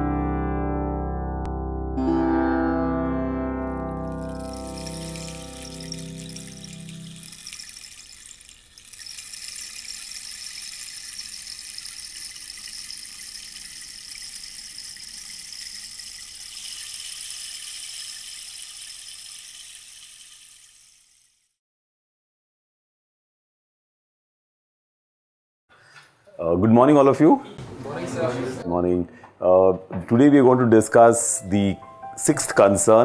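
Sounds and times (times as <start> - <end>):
title music: 0.0 - 6.2.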